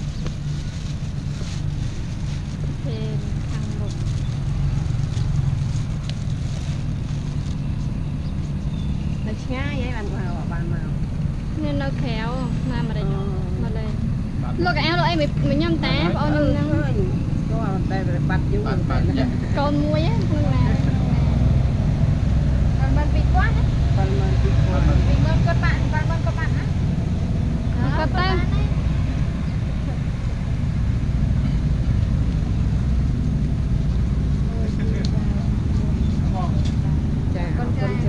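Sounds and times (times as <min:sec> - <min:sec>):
steady low rumble: 0:00.0 - 0:38.0
people talking: 0:02.8 - 0:04.0, 0:09.2 - 0:11.0, 0:11.6 - 0:21.5, 0:22.8 - 0:26.8, 0:27.7 - 0:30.1, 0:34.4 - 0:38.0.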